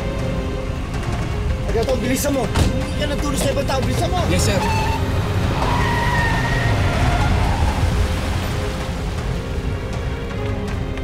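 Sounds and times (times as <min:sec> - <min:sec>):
vehicle engine rumbling: 0:00.0 - 0:10.9
dramatic background music: 0:00.0 - 0:11.0.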